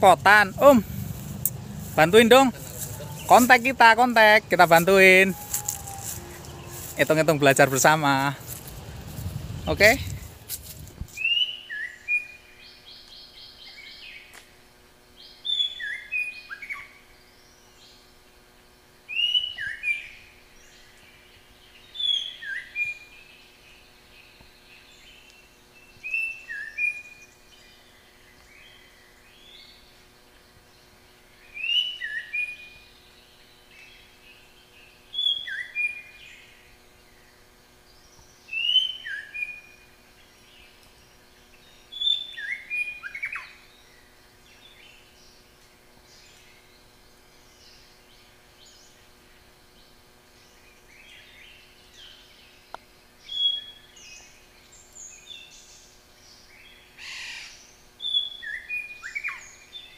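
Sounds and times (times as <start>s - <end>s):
songbird whistled song: 1.1s - 7.3s, 11.1s - 14.4s, 15.2s - 18.1s, 19.1s - 30.0s, 30.7s - 45.4s, 49.7s - 59.9s.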